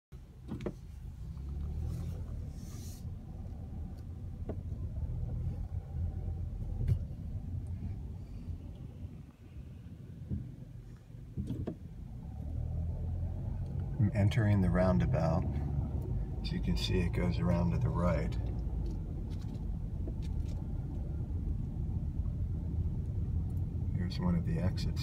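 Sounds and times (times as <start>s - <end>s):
car engine and tyres rumbling: 0.1s - 25.0s.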